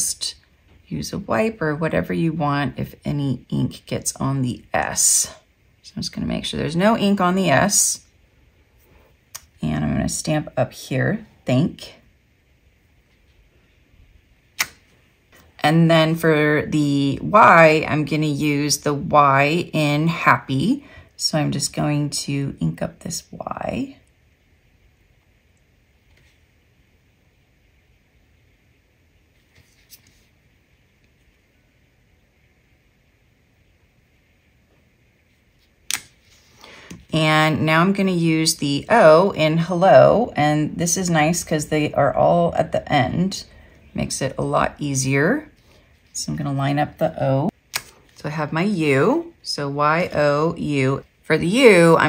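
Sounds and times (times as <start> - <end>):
rustle of card being handled: 26.0 - 26.5, 29.3 - 31.4, 35.2 - 37.0.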